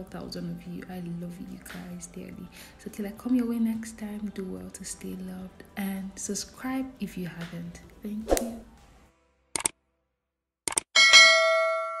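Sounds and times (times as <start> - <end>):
bell ding: 11.0 - 12.0.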